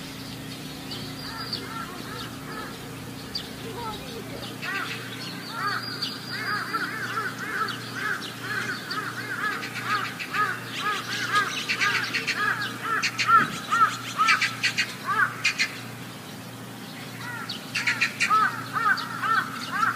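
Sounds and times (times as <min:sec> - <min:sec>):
birds chirping: 0:00.0 - 0:19.9
rasping bird calls: 0:00.0 - 0:19.9.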